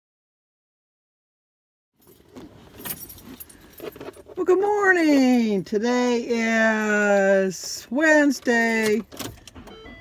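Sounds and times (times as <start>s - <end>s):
keys jangling: 2.0s - 4.4s.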